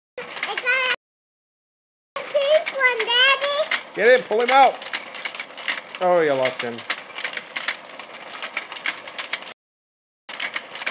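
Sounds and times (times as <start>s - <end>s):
toy gears clicking and rattling: 0.2s - 1.0s, 2.2s - 9.6s, 10.3s - 10.9s.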